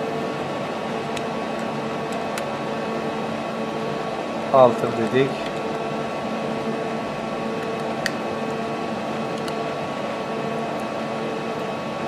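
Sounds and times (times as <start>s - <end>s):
lathe machine hum: 0.0s - 12.0s.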